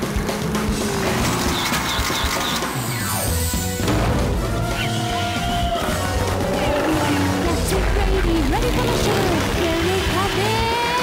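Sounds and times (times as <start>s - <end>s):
theme music with steady beat: 0.0s - 10.8s.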